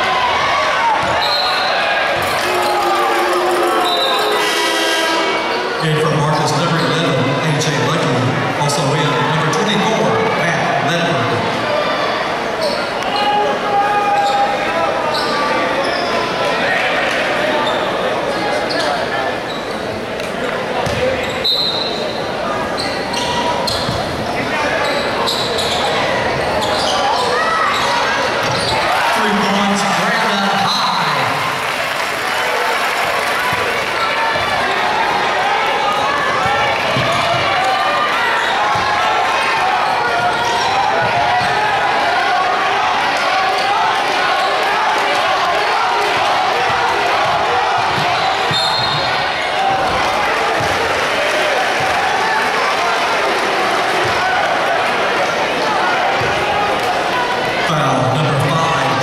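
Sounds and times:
crowd chatter and shouts: 0.0s - 59.0s.

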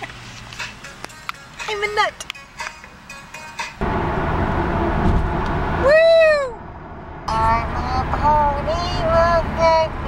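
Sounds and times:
car road noise: 0.0s - 10.0s
person shouting whoo: 5.8s - 6.6s.

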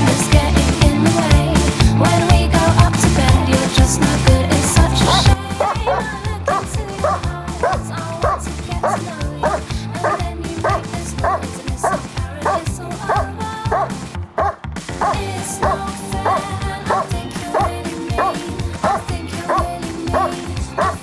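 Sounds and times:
background music: 0.0s - 21.0s
dog barking: 5.0s - 21.0s.

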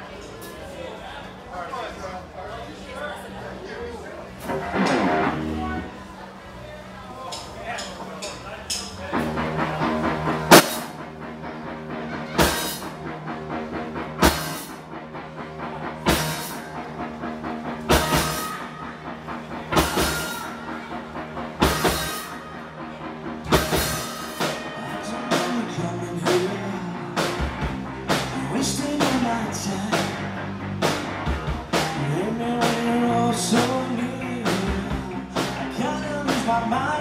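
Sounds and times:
bass guitar: 3.3s - 37.0s
electric guitars: 4.2s - 7.0s, 9.0s - 37.0s
drum kit: 4.4s - 5.9s, 7.3s - 37.0s
loud accented band hits: 9.2s - 14.9s, 16.0s - 16.8s, 17.5s - 26.6s.

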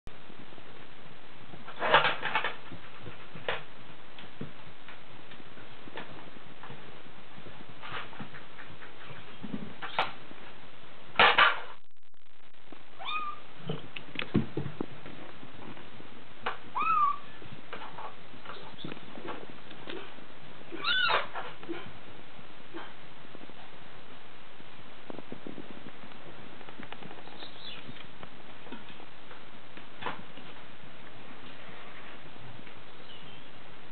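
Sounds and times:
kitten meowing: 13.0s - 13.4s, 16.7s - 17.3s, 20.7s - 21.3s.

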